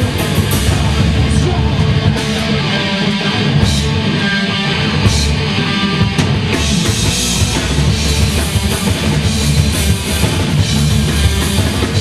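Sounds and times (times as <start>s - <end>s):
distorted electric guitar strumming: 0.0s - 12.0s
punk band playing: 0.0s - 12.0s.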